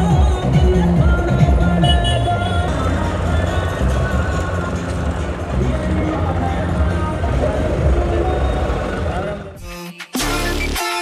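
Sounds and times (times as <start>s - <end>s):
people's voices: 0.0s - 9.6s
tractor diesel engine running: 0.0s - 9.6s.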